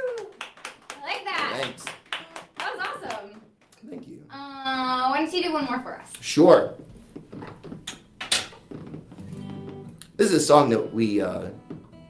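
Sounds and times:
knock on acoustic guitar: 11.6 - 12.0.

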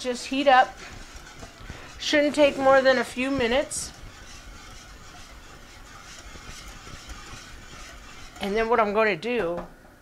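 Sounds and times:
whisk scraping in pot: 0.0 - 9.3.

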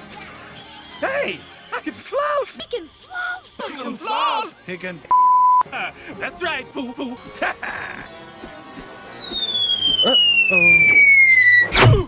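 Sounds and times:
cartoon falling whistle: 9.1 - 12.0.

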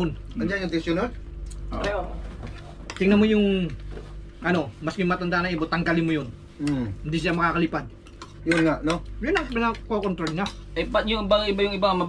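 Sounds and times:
voices: 4.4 - 12.0.

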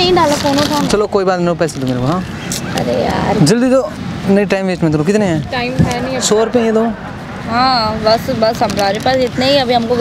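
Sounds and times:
people talking: 2.8 - 10.0
noise burst: 5.2 - 8.8.

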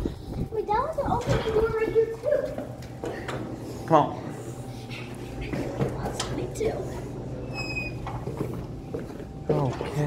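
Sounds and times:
steady low hum: 0.0 - 10.0
door squeaking open: 7.4 - 8.2.

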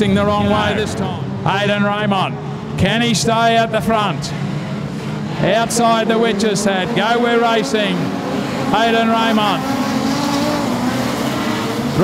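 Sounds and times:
race car engines droning: 0.0 - 12.0.

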